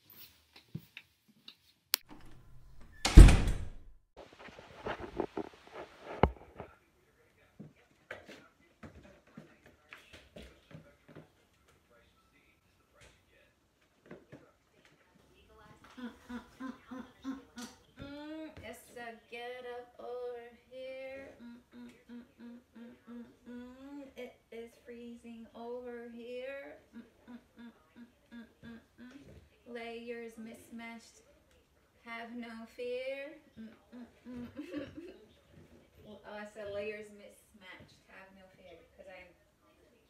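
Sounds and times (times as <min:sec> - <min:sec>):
woman humming: 0:21.2 - 0:24.2, 0:26.9 - 0:29.4, 0:33.6 - 0:35.0.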